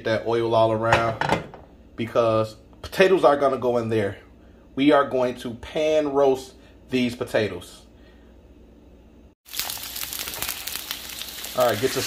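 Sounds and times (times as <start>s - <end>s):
potatoes sizzling in hot oil: 9.4s - 12.0s.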